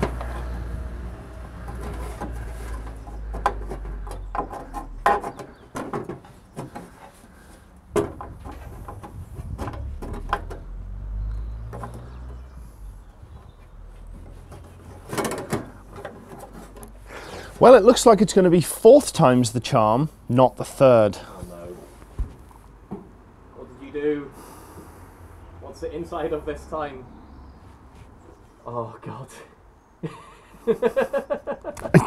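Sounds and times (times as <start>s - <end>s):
knocks and clicks of metal parts: 1.6s - 7.1s, 7.9s - 10.7s, 14.2s - 17.0s.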